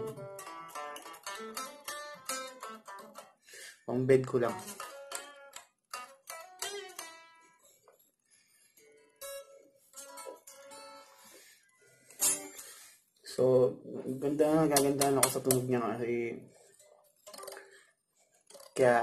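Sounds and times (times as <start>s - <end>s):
unplugged electric guitar notes: 0.0s - 3.2s
man's voice: 3.9s - 4.7s, 13.3s - 16.5s, 18.8s - 19.0s.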